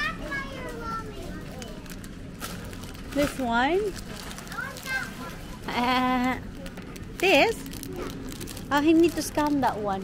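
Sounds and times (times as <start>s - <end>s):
young child's high voice: 0.0s - 1.9s, 4.5s - 5.8s
steady background hum: 0.0s - 10.0s.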